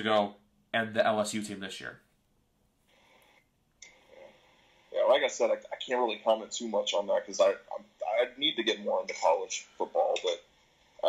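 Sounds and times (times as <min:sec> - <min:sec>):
faint recording hiss: 0:00.0 - 0:11.0.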